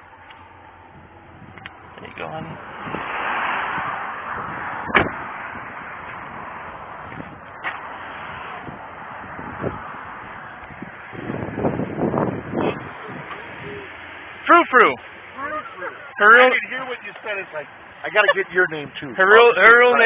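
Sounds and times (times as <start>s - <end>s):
rushing noise: 0.0s - 18.2s
car door slamming: 3.8s - 5.5s.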